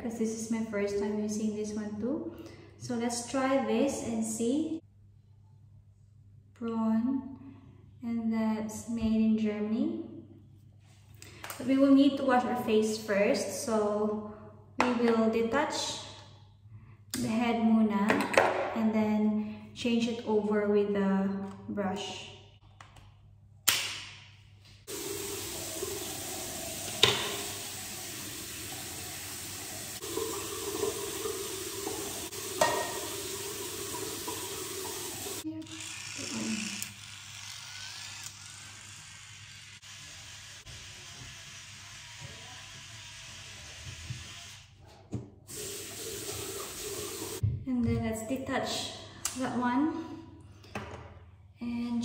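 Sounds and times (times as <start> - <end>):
tap water running into sink: 24.9 - 35.4, 45.5 - 47.4.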